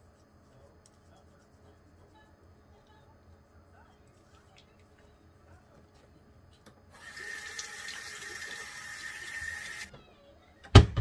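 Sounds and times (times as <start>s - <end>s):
water tap running into sink: 7.0s - 9.9s.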